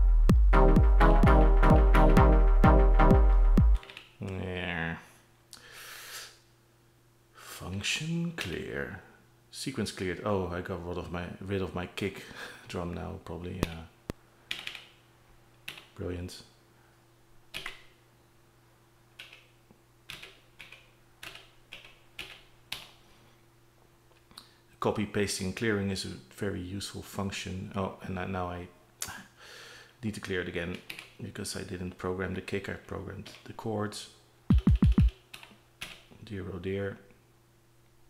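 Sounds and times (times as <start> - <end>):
synthesized kick drum hits: 0.0 - 3.8, 34.5 - 35.1
faint steady hum: 3.3 - 38.0.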